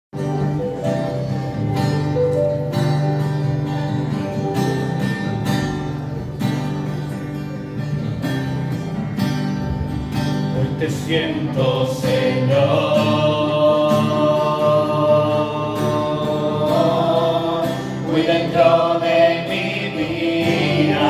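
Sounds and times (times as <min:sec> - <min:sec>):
acoustic guitar strumming chords: 0:00.2 - 0:21.0.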